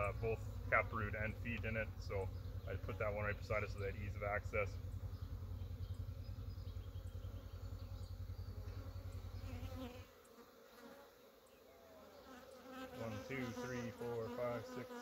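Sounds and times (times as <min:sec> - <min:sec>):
honeybees buzzing: 0:00.0 - 0:15.0
low fluttering rumble: 0:00.1 - 0:09.6.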